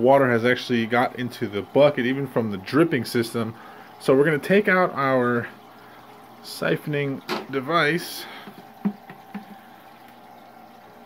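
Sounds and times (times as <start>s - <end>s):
aquarium aerator bubbling: 0.0s - 11.0s.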